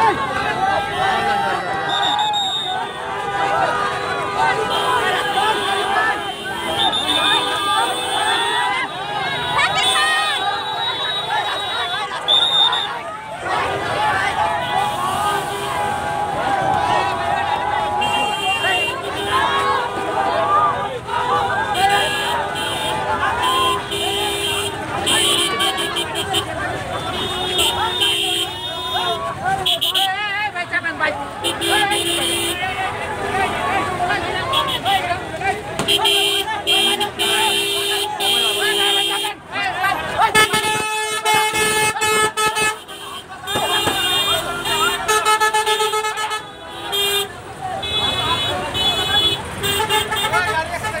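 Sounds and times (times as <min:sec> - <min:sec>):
crowd shouting: 0:00.0 - 0:51.0
car horn honking: 0:03.7 - 0:13.0, 0:17.8 - 0:19.9, 0:21.2 - 0:30.2, 0:31.4 - 0:32.8, 0:35.8 - 0:51.0.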